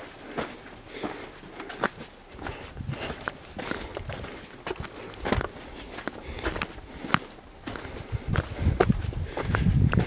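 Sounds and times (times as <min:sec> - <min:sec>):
footsteps on sandy ground: 0:00.0 - 0:10.0.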